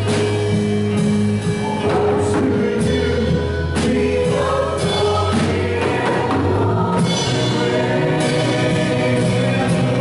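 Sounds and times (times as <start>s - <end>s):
worship band playing: 0.0s - 10.0s
group of singers: 1.4s - 10.0s.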